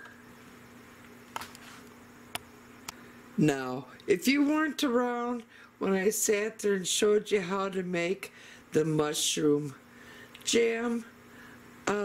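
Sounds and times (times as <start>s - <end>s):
faint low electrical hum: 0.0s - 12.0s.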